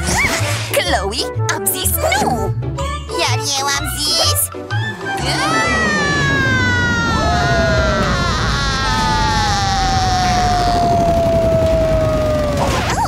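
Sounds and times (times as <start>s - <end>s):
girl screaming: 5.2s - 12.6s.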